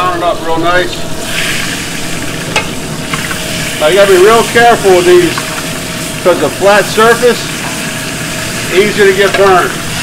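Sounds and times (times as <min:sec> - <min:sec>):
meat sizzling in a pan: 0:01.1 - 0:10.0.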